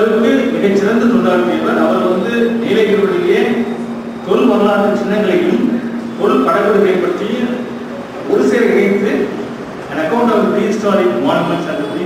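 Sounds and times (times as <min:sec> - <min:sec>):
man speaking over loudspeakers: 0:00.0 - 0:12.0.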